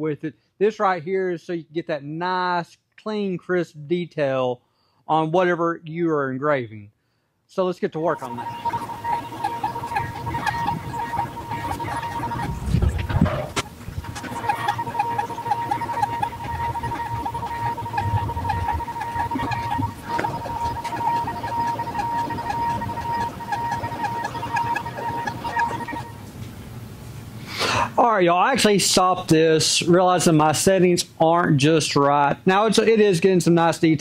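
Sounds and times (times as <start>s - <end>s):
fast regular pulsing: 8.0s - 26.9s
stepper motors whining: 8.1s - 26.4s.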